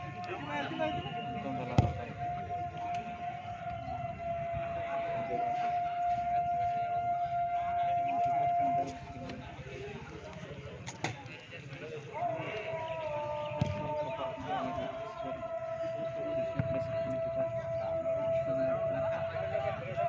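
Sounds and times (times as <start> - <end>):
siren-like steady tone: 0.0 - 9.6
spectators talking: 0.0 - 20.0.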